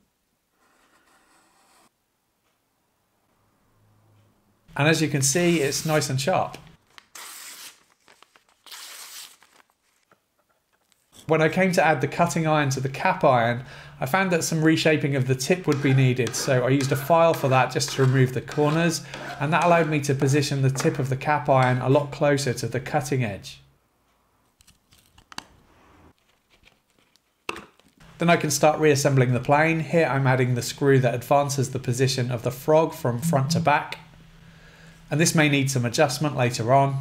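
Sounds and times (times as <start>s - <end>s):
blade slicing paper: 7.0s - 10.1s.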